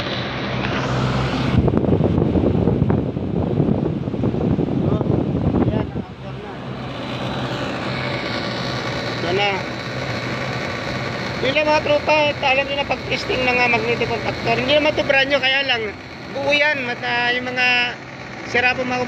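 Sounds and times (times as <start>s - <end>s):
air conditioner unit humming: 0.0s - 19.0s
rush of noise: 0.0s - 19.0s.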